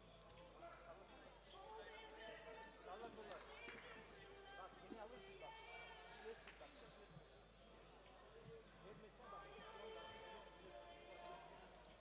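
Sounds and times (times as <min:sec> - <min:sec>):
faint voices of people talking: 0:00.0 - 0:12.0.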